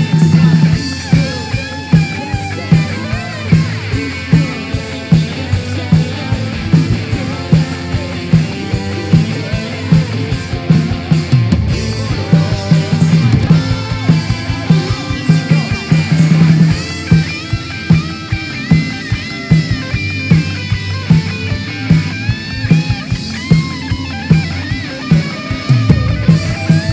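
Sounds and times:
live band playing rock music: 0.0s - 26.9s.

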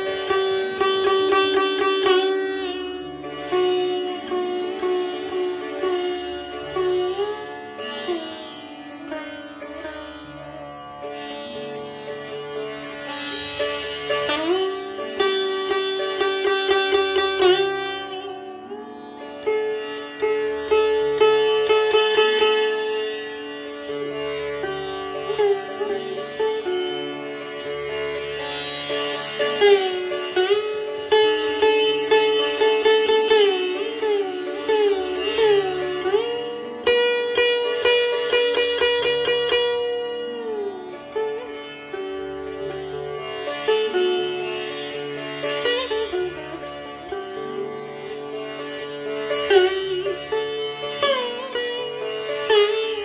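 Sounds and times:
sitar playing sliding notes: 0.0s - 53.0s.

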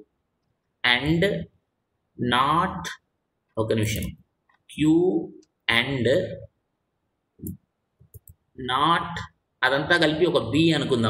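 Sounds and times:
man speaking: 0.8s - 1.6s, 2.2s - 6.5s, 8.6s - 11.0s.

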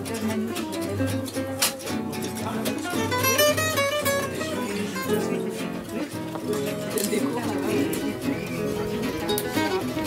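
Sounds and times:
acoustic guitars playing swing: 0.0s - 10.0s.

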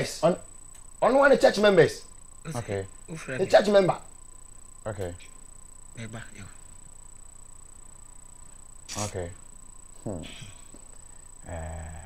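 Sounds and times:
faint steady hiss: 0.0s - 12.0s
high-pitched whine: 0.0s - 12.0s
voice fragments: 8.9s - 9.4s.

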